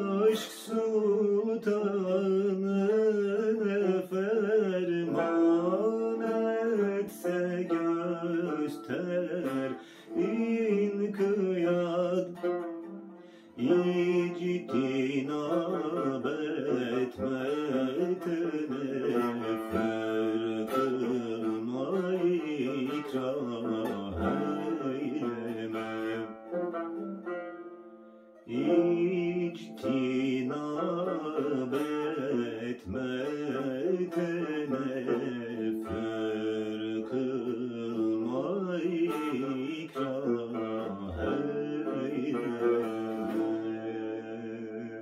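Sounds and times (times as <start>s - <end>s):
man singing slow classical song: 0.0s - 26.9s, 28.4s - 45.0s
plucked lute: 0.0s - 45.0s.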